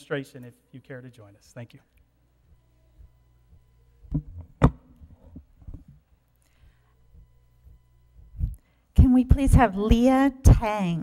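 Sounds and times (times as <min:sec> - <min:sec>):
microphone handling thumps: 0:03.0 - 0:06.1, 0:07.1 - 0:08.6.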